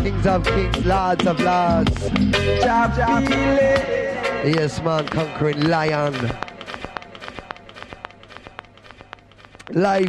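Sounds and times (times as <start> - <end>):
radio clicks and crackles: 4.5 - 10.0.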